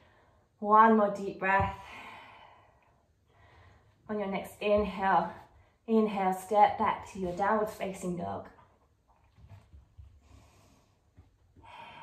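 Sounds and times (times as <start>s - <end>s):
faint breath: 1.8s - 4.0s, 10.2s - 12.0s.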